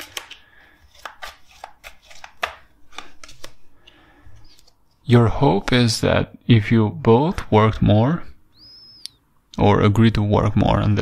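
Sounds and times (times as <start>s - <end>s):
cards dealt on tabletop: 0.0s - 3.6s.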